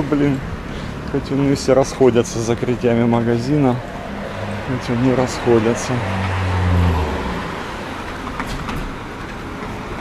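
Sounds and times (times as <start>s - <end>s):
traffic noise: 0.0s - 10.0s
vehicle engine passing by: 2.5s - 8.4s.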